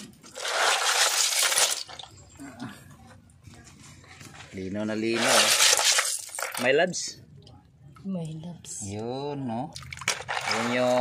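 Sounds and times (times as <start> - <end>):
shellfish shells clinking in water: 0.0 - 2.2, 5.1 - 7.0, 9.8 - 11.0.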